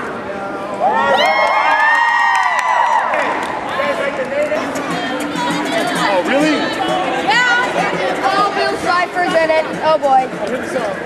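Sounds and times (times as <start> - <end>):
group cheering and whooping: 0.8 - 4.0.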